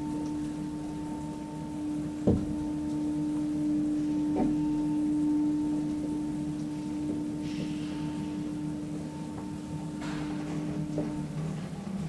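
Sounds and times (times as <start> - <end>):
elevator drive humming: 0.0 - 12.0.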